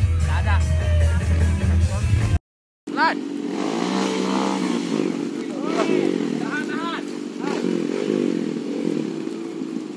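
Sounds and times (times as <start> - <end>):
music: 0.0 - 2.4
dirt bike engine under load: 3.5 - 9.9.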